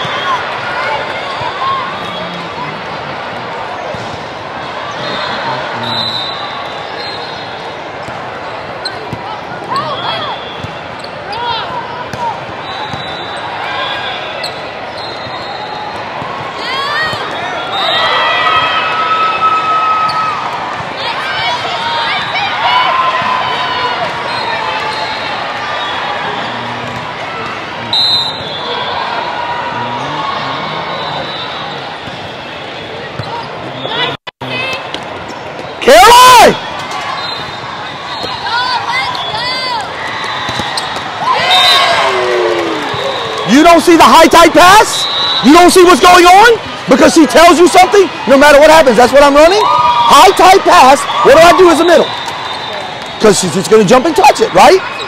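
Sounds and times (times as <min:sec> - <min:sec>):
crowd hum: 0:00.0 - 0:13.4, 0:25.0 - 0:35.7
players' voices: 0:00.0 - 0:19.0, 0:20.2 - 0:55.0
sneakers squeaking on court: 0:12.6 - 0:13.5, 0:30.7 - 0:34.1, 0:40.3 - 0:41.1
balls bouncing and being struck: 0:40.3 - 0:41.2.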